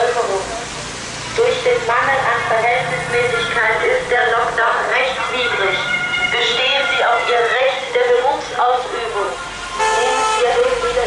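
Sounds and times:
amplified voice announcement: 0.0 - 0.7, 1.4 - 11.0
car horns honking: 9.3 - 10.9.

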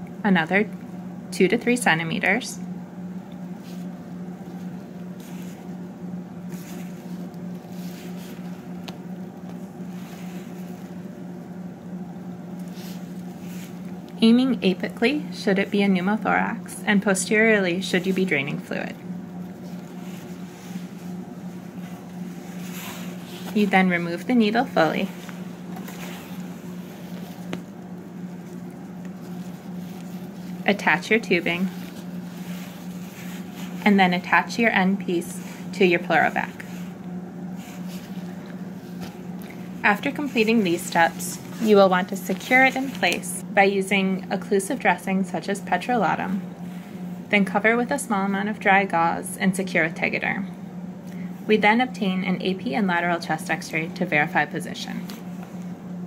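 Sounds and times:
low electrical hum: 0.0 - 56.0
soft rustles: 3.4 - 11.5, 12.4 - 15.0, 19.3 - 43.4.

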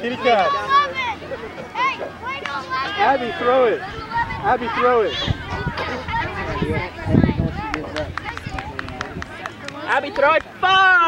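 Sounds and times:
players and spectators calling: 0.0 - 11.0
low rumble on microphone: 3.9 - 9.3.

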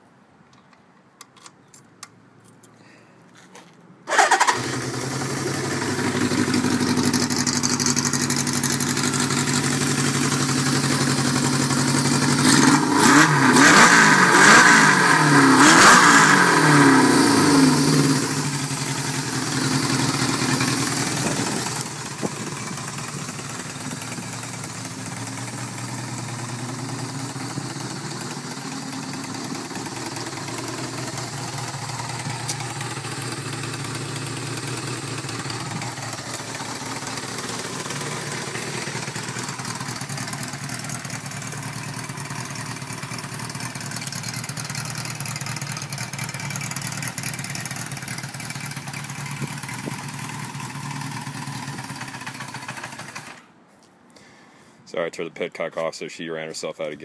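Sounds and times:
motorcycle engine idling and revving: 4.1 - 53.5.

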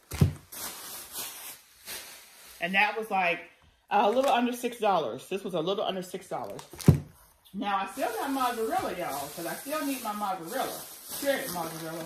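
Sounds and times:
package thumping on table: 0.0 - 0.5
plastic packaging rustling: 0.0 - 3.0, 4.0 - 4.6, 6.3 - 12.0.

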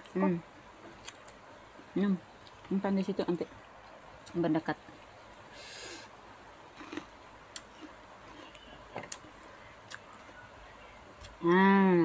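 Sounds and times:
breathy hiss: 5.5 - 6.2.

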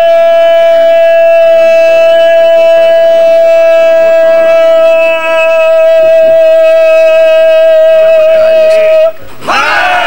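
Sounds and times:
high-pitched feedback howl: 0.0 - 9.2.

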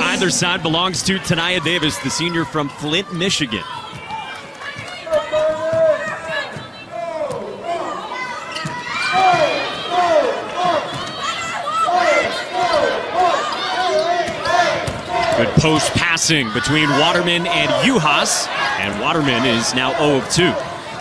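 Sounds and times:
crowd murmur: 0.0 - 21.0.

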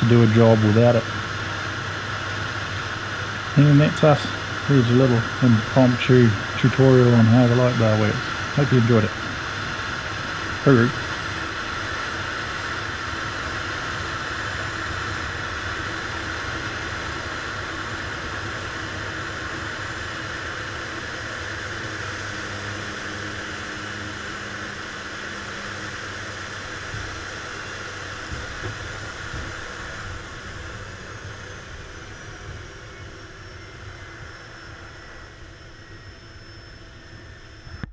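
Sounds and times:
faint high whine falling in pitch: 0.0 - 37.9
turboprop engine drone and hiss: 0.0 - 37.9.

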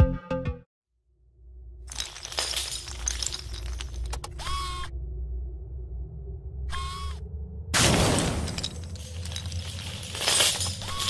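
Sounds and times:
clatter of falling pieces: 1.9 - 4.3, 7.8 - 11.0
low rumbling drone: 4.6 - 11.0.

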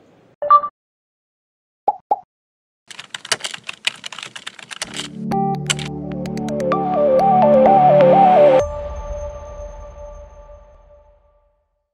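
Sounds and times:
computer keyboard typing: 2.9 - 6.6.

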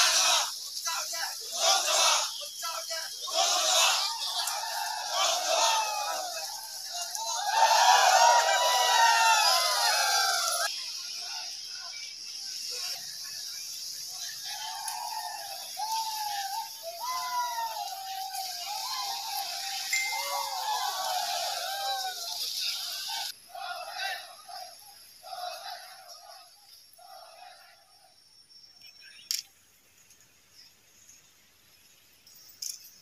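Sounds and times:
people calling out: 0.0 - 12.0, 14.0 - 27.8
steady hiss: 0.0 - 23.6.

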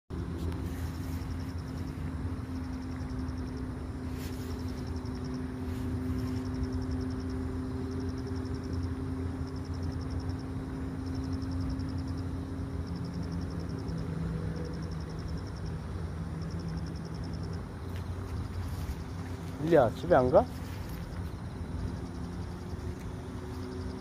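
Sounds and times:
low engine hum: 0.1 - 24.0
insect trill: 0.2 - 24.0.

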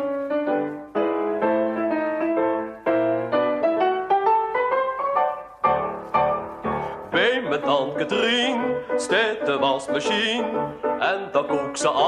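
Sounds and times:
piano playing: 0.0 - 12.0.

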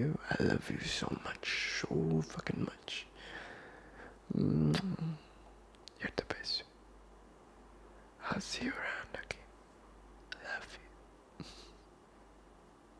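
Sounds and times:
man whispering: 0.0 - 3.2, 4.1 - 6.8, 8.2 - 9.5, 10.3 - 11.8.

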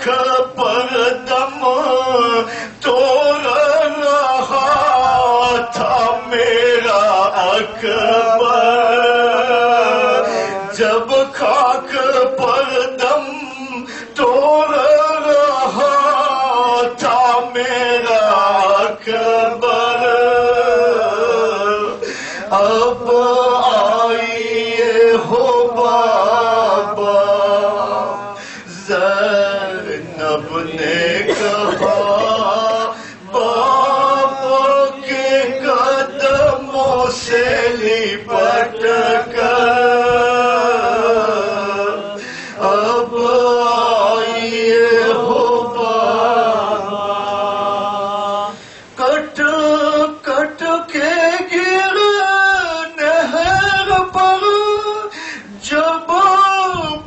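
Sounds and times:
man chanting into a microphone: 0.0 - 57.0
breaths between phrases: 22.0 - 22.5, 42.2 - 42.6, 55.1 - 55.6.

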